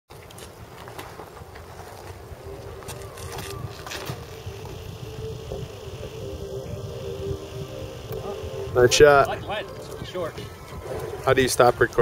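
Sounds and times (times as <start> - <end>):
wind rumbling on microphone: 0.6 - 12.0
faint steady hum: 2.3 - 10.8.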